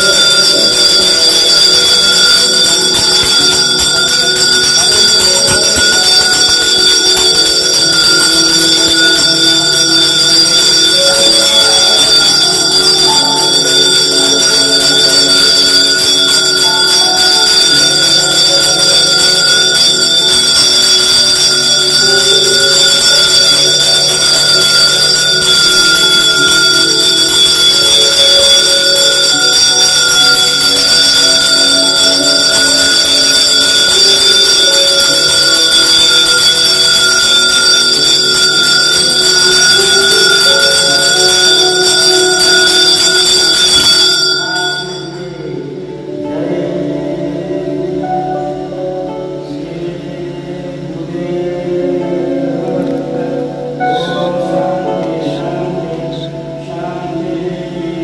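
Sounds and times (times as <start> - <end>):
temple bells ringing: 0.0 - 49.4.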